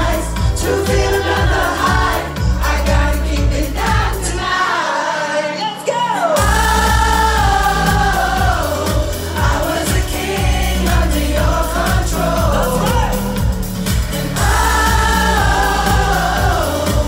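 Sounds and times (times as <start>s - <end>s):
electronic pop song through club speakers: 0.0s - 17.0s.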